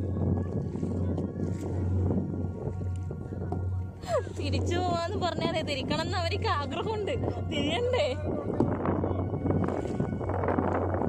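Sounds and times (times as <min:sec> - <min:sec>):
background music: 0:00.0 - 0:11.0
water splashing against hull: 0:00.0 - 0:11.0
wind rumbling on microphone: 0:00.0 - 0:11.0.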